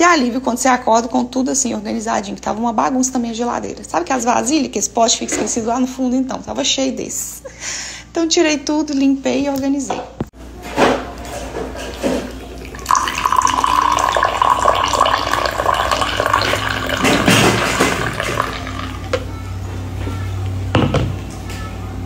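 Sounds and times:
coffee pouring into glass mug: 11.8s - 19.3s.

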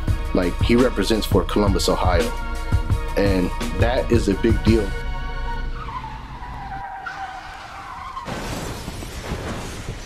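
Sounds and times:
music: 0.0s - 6.2s
tires screeching: 3.5s - 10.0s.

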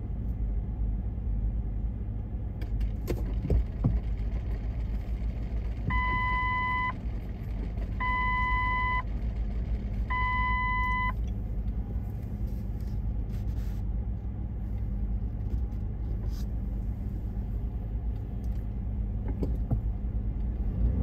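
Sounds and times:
street traffic rumble: 0.0s - 21.0s
reversing alarm beeps: 5.9s - 7.0s, 8.0s - 9.0s, 10.1s - 11.2s.

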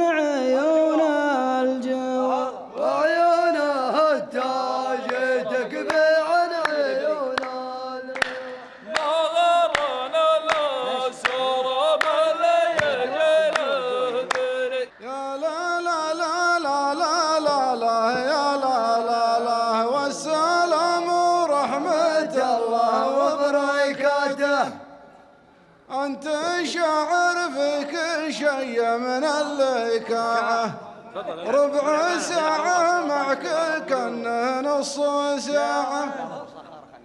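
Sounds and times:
man singing unaccompanied: 0.0s - 25.0s, 25.9s - 36.5s
men chanting together: 0.0s - 25.0s, 25.9s - 36.6s
sharp handclap: 5.0s - 15.0s.

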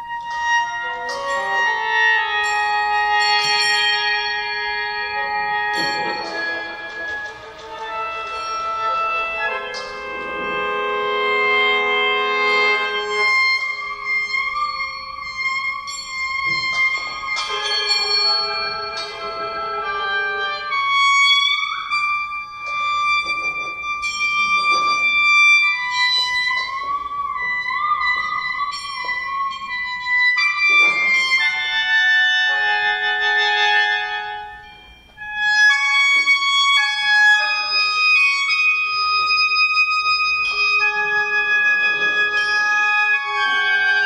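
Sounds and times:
sheng playing reedy chords: 0.0s - 44.0s.

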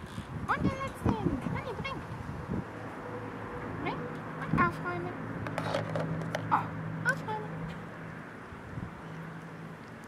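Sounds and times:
plastic toys clicking and scraping: 5.5s - 6.5s.

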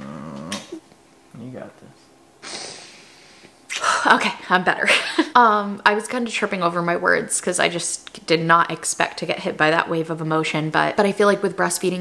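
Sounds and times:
low wordless humming: 0.0s - 2.1s
person sniffing: 2.4s - 3.5s.

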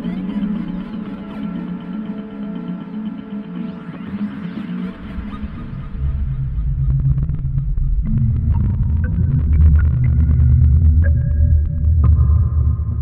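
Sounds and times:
deep low drone: 5.4s - 13.0s.

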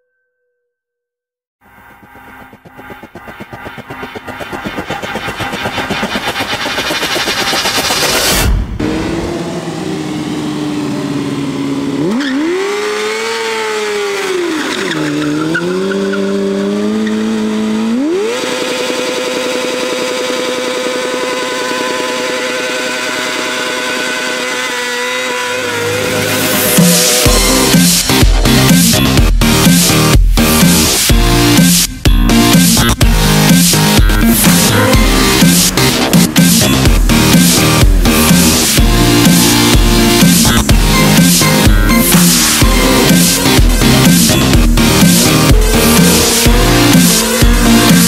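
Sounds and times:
motorcycle engine revving hard: 3.0s - 31.5s, 32.4s - 48.0s.

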